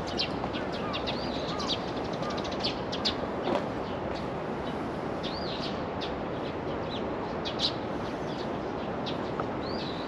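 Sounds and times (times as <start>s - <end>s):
outdoor background noise: 0.0s - 10.0s
small birds chirping: 0.0s - 10.0s.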